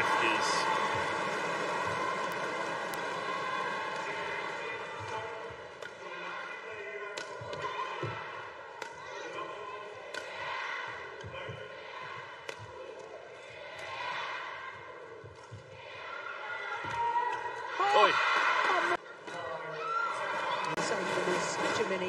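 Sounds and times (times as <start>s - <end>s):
arena crowd noise: 0.0s - 22.0s
racket striking shuttlecock: 7.1s - 7.7s, 12.4s - 13.1s.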